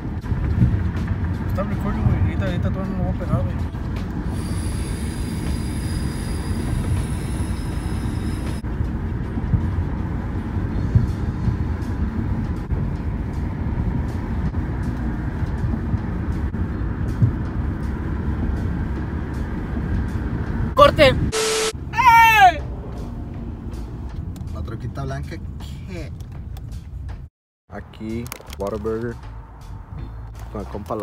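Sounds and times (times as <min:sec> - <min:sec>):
road rumble inside car: 0:00.0 - 0:31.0
thin high whine: 0:04.3 - 0:08.6, 0:21.3 - 0:21.8.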